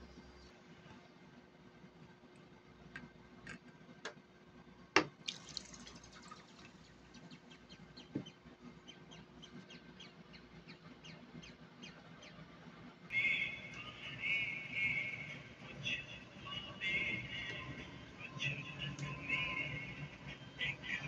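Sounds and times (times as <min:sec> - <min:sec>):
water dripping and splashing: 0:05.2 - 0:07.2.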